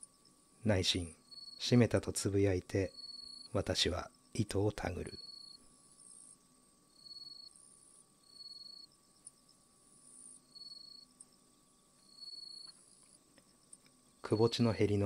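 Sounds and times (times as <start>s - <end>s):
high steady buzz: 0.0s - 15.0s
insect trills: 0.0s - 15.0s.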